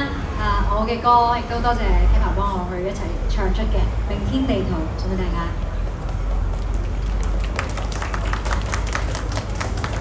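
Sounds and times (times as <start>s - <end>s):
audience clapping: 5.8s - 10.0s.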